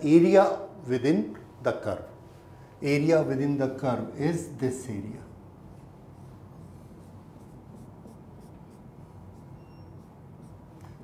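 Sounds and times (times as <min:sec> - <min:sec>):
marker pen on whiteboard: 0:05.6 - 0:11.0.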